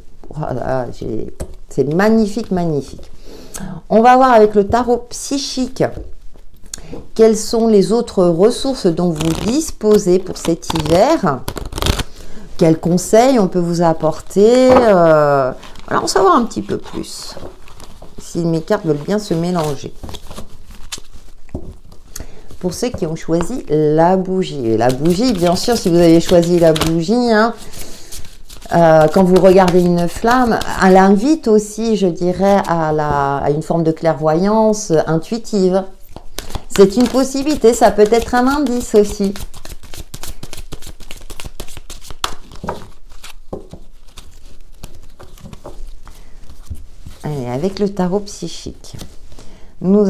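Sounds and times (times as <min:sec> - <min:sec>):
cards being shuffled: 0:09.1 - 0:12.2, 0:14.2 - 0:23.5, 0:24.8 - 0:31.0, 0:36.1 - 0:47.2.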